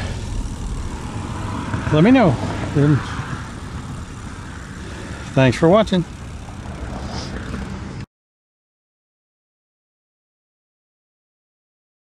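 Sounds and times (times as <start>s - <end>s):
wind buffeting microphone: 0.0s - 8.0s
trike rolling on concrete: 0.0s - 8.1s.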